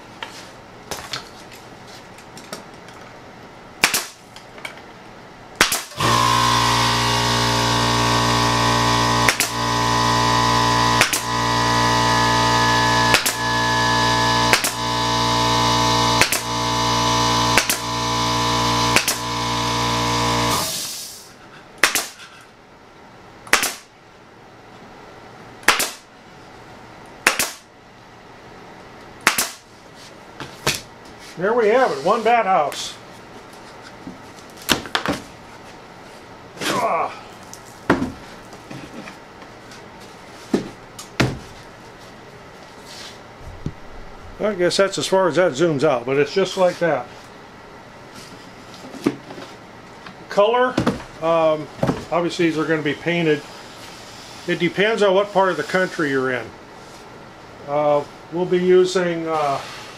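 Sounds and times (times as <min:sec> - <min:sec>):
staple gun firing into wood: 0:03.8 - 0:04.2, 0:05.6 - 0:06.1, 0:09.3 - 0:09.6, 0:11.0 - 0:11.3, 0:14.5 - 0:14.8, 0:17.6 - 0:17.8, 0:19.0 - 0:19.2, 0:21.8 - 0:22.2, 0:23.5 - 0:23.8, 0:25.6 - 0:26.0, 0:27.2 - 0:27.6, 0:29.2 - 0:29.6
air compressor humming: 0:05.7 - 0:22.4.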